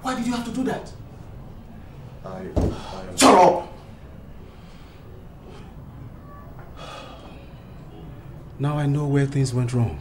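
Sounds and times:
man breathing: 2.6s - 3.1s, 6.7s - 7.6s.

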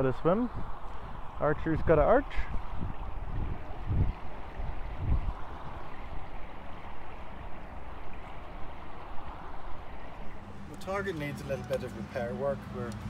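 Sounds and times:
water splashing and lapping: 0.0s - 13.0s.

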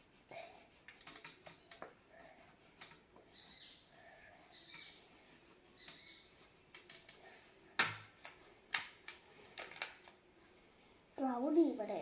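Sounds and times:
oil pastel scratching on paper: 0.0s - 6.7s.

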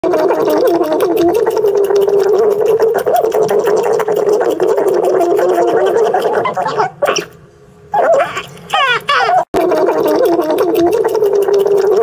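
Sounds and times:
guinea pig purring: 0.0s - 7.3s, 8.0s - 12.0s.

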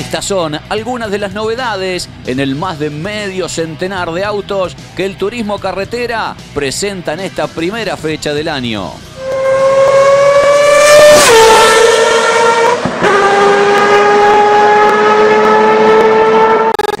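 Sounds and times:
race car engine at high revs: 9.2s - 17.0s.

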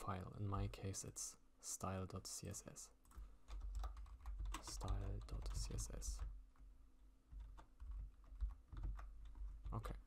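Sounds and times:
computer keyboard typing: 3.0s - 6.4s, 7.3s - 10.0s.

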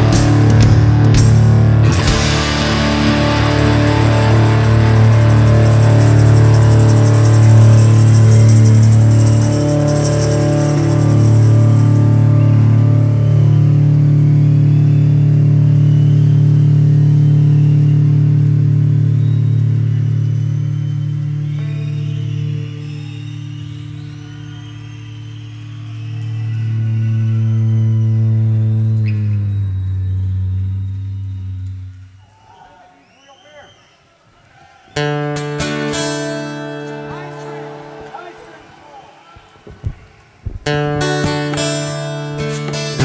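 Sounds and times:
droning electric guitar chords: 0.0s - 32.0s, 35.0s - 38.2s, 40.7s - 43.0s.

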